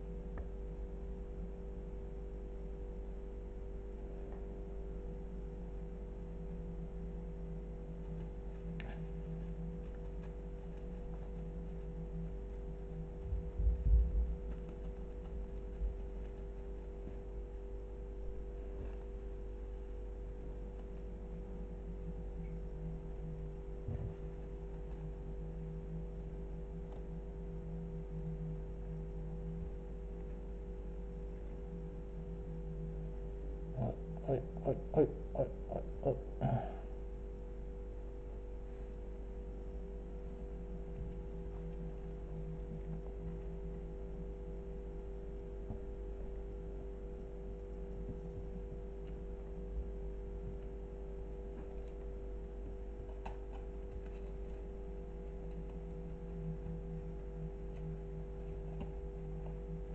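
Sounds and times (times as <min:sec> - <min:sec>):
appliance humming: 0:00.0 - 0:59.9
wavering low tone: 0:00.0 - 0:59.9.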